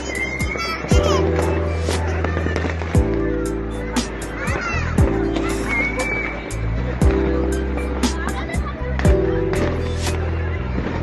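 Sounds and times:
background music with held notes: 0.0 - 11.0
firework bangs and crackles: 0.0 - 11.0.

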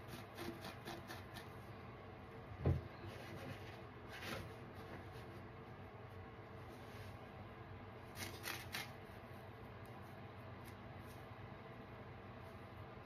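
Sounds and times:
faint steady background noise: 0.0 - 13.0.

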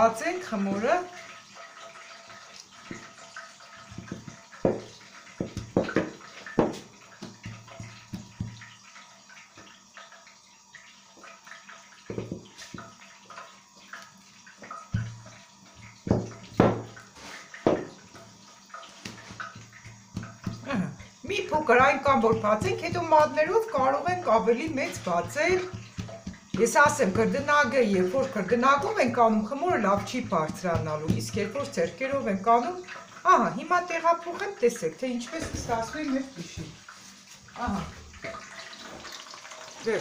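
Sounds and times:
rolling pin knocking on dough: 3.8 - 8.7, 12.1 - 12.9, 14.9 - 17.0, 17.6 - 18.2, 18.9 - 32.7.

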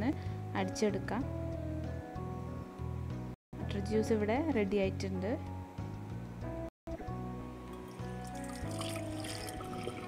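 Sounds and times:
background music with held notes: 0.0 - 10.0
thick juice pouring into steel cup: 7.7 - 10.0.

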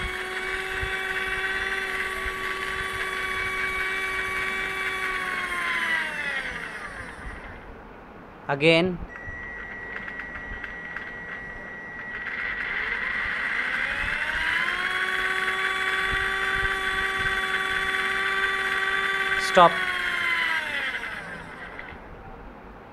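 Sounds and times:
electric motor and gears whining: 0.0 - 7.8, 9.1 - 22.2
faint steady high tone: 9.1 - 19.8.

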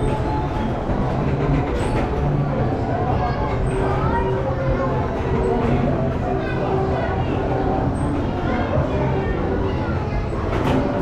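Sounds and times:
carousel mechanical rumble: 0.0 - 11.0.

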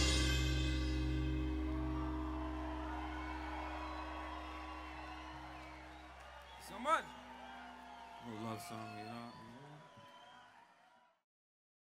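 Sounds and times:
electric and bass guitar chord ringing: 0.0 - 6.1.

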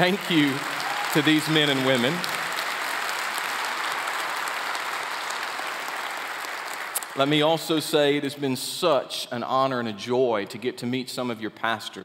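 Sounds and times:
congregation clapping: 0.0 - 8.2.

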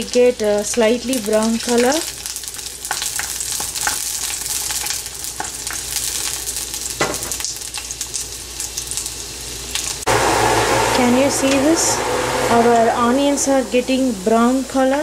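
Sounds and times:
garlic sizzling in a pan: 0.0 - 15.0
low hum: 10.1 - 15.0.

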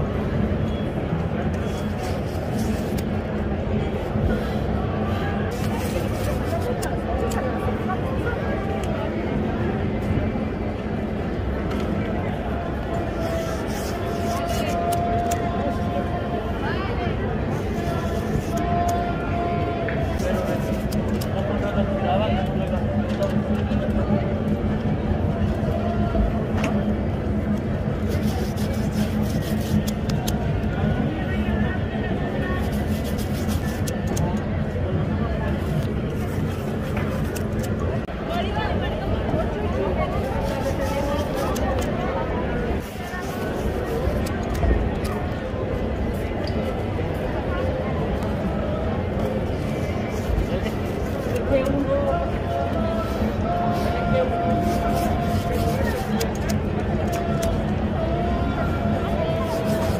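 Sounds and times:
voices of passers-by: 0.0 - 59.9.

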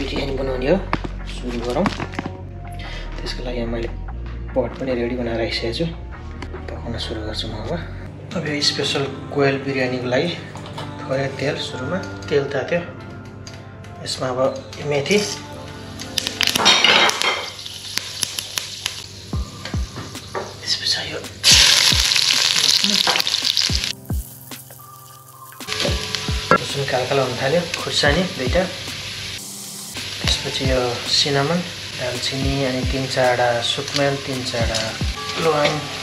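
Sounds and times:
background music: 0.0 - 36.0
spice seeds sizzling in hot oil: 16.2 - 19.4, 20.2 - 36.0.

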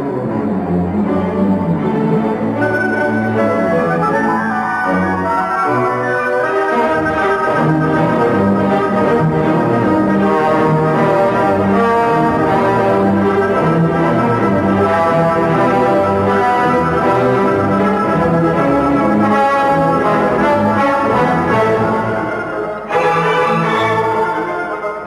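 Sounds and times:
symphony orchestra playing: 0.0 - 25.0.

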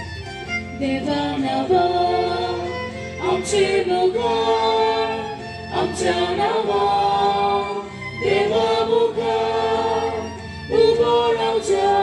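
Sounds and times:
choir singing a hymn: 0.8 - 12.0.

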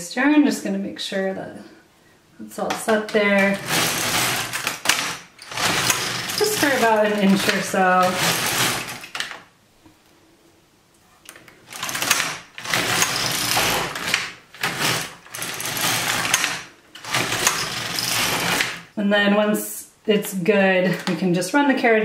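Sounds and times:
knitting machine carriage passing: 3.1 - 9.4, 11.6 - 18.9.

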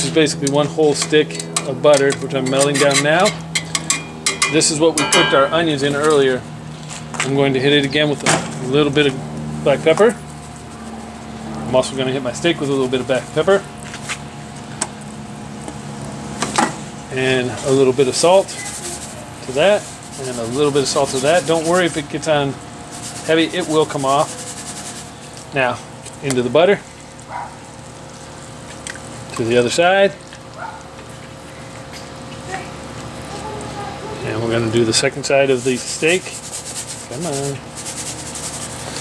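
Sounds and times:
steady low hum: 0.0 - 39.0
pepper shaker rattling: 18.4 - 22.1, 22.8 - 25.5, 35.6 - 39.0
steak sizzling in a skillet: 26.8 - 39.0.

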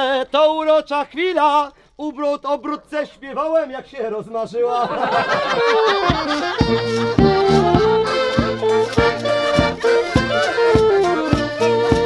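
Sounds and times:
accordion: 5.0 - 12.0
tuba bass: 5.3 - 12.0
bass drum beats: 6.0 - 12.0.

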